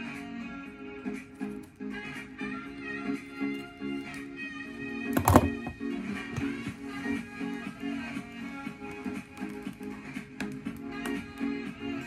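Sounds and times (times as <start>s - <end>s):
background guitar music: 0.0s - 12.0s.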